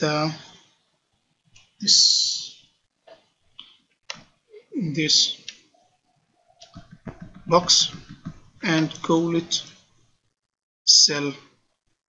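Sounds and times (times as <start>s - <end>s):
man speaking: 0.0s - 0.5s, 1.8s - 2.6s, 4.6s - 5.5s, 6.8s - 9.7s.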